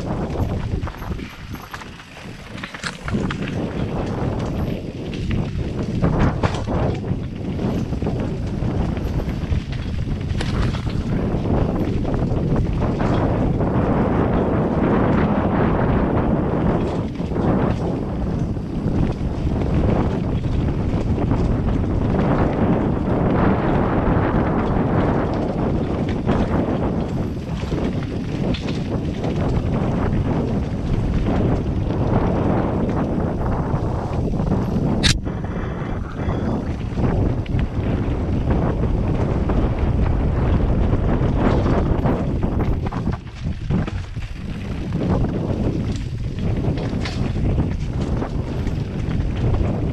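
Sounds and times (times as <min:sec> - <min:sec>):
bike tyres and frame rattling: 0:00.0 - 0:49.9
wind over microphone: 0:00.0 - 0:49.9.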